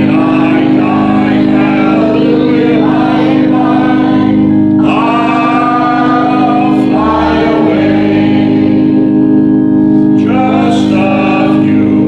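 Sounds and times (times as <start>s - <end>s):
congregation singing a hymn: 0.0s - 12.0s
instrumental chords: 0.0s - 12.0s.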